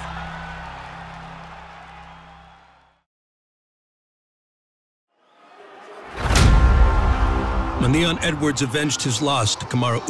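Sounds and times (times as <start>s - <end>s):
arena crowd noise: 0.0s - 3.0s, 5.1s - 10.0s.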